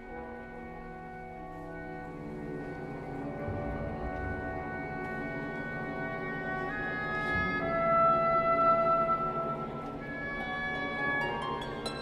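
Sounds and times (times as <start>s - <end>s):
orchestra playing sustained notes: 0.0s - 12.0s.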